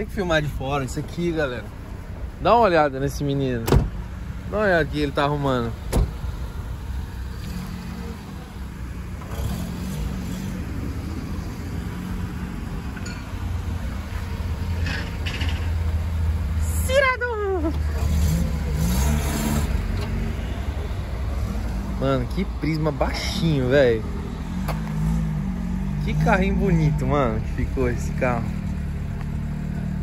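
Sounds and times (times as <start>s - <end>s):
car engine rumbling: 0.0s - 30.0s.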